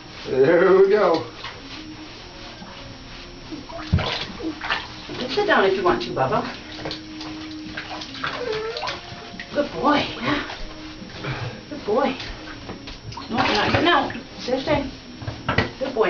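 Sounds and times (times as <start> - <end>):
bathwater sloshing and splashing: 0.0 - 16.0.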